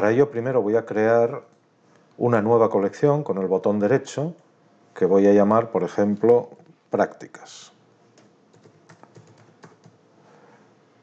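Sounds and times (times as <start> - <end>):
faint keyboard typing: 8.1 - 10.1.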